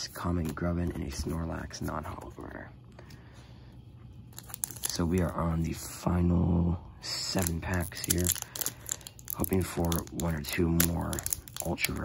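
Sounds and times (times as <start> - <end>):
foil wrapper crinkling: 4.4 - 5.1, 7.4 - 12.0.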